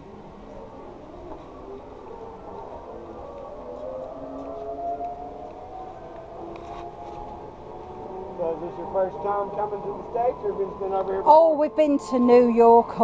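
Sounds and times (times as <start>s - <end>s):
zipline pulleys whining on cable: 0.0s - 13.0s.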